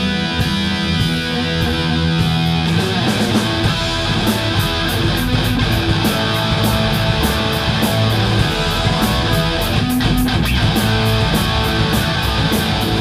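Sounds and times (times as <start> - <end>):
drum kit cymbal beat: 0.0 - 13.0
electric guitars: 0.0 - 13.0
keyboard: 0.0 - 13.0.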